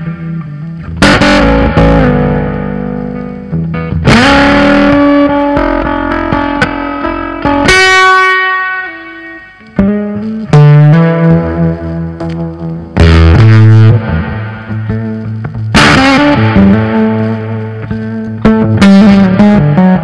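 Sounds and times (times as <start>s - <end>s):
electric guitar blues jam: 0.0s - 20.0s.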